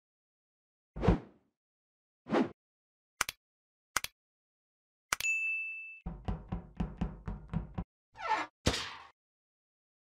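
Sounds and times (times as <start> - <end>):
bell-like ding: 5.2 - 6.0.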